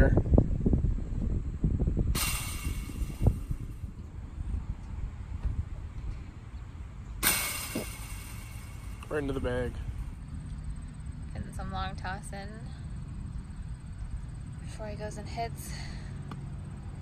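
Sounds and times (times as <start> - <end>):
wind buffeting microphone: 0.0 - 7.0
sharp knock: 2.2 - 3.8, 7.2 - 9.4.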